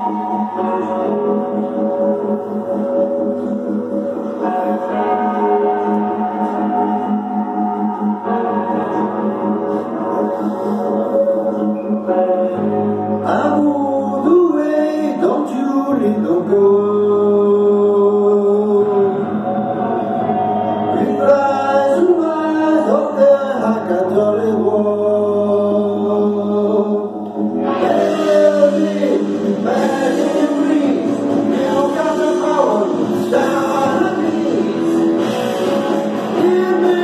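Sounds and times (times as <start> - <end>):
rock backing track: 0.0 - 16.4, 27.1 - 37.0
man singing long notes: 0.0 - 37.0.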